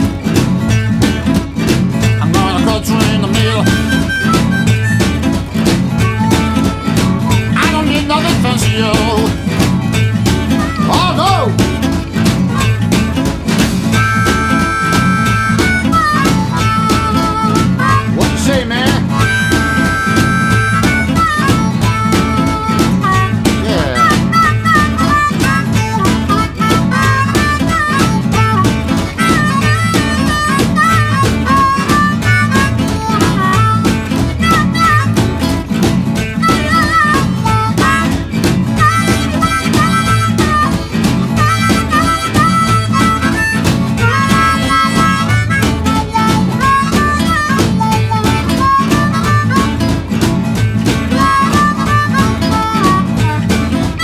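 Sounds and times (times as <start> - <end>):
guitar: 0.0 - 54.0
harmonica solo: 0.0 - 54.0
steady beat: 0.0 - 54.0.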